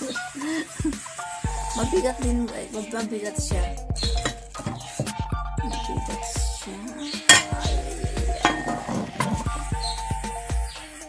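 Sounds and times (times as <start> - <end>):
background music with steady beat: 0.0 - 11.0
cookware knocking: 4.1 - 5.2, 8.5 - 9.4
pot lid clanking: 8.4 - 9.4.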